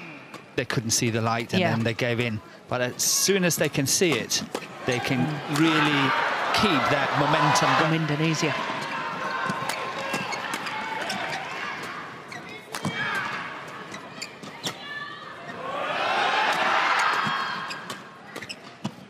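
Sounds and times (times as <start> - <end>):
crowd noise in large hall: 0.0 - 19.0
shoe squeaks on court: 8.7 - 14.8, 17.0 - 19.0.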